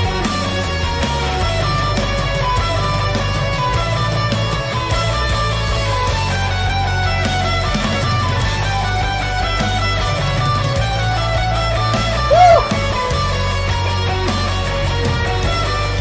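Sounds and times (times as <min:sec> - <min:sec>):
live rock music: 0:00.0 - 0:16.0.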